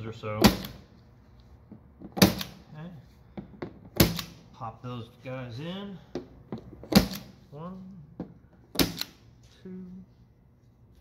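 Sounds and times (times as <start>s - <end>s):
glazing point driver snaps: 8.8s - 9.2s.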